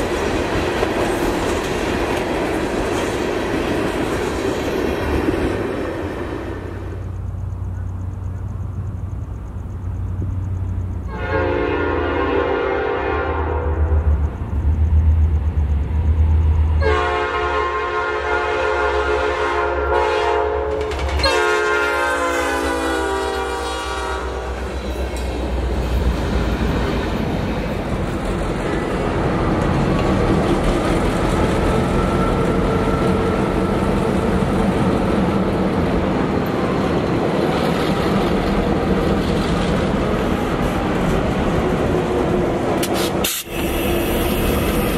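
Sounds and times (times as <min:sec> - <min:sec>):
train rumbling by: 0:00.0 - 0:44.9
locomotive air horn blasts: 0:11.1 - 0:14.0, 0:16.8 - 0:24.7.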